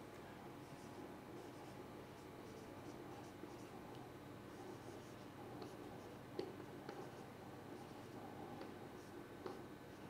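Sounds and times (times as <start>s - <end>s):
marker scratching on whiteboard: 0.6s - 10.0s.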